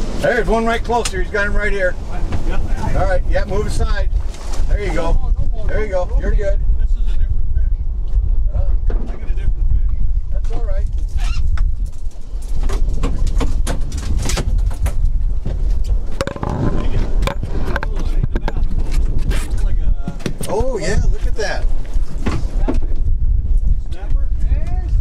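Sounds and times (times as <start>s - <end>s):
wind rumble on microphone: 0.0s - 25.0s
knocks and clatter in boat: 2.2s - 4.6s, 8.8s - 20.9s, 22.0s - 23.1s.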